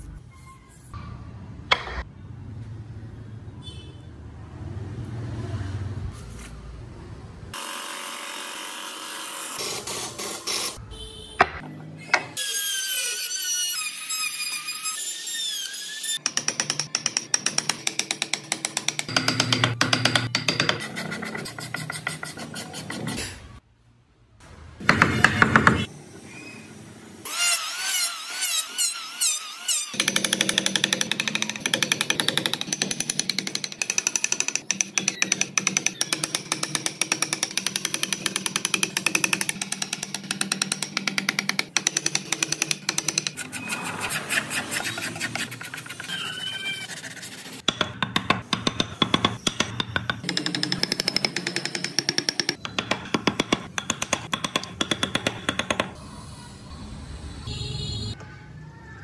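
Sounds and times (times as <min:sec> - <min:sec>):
chisel tapping into wood: 0:30.0 - 0:43.4, 0:47.7 - 0:56.0.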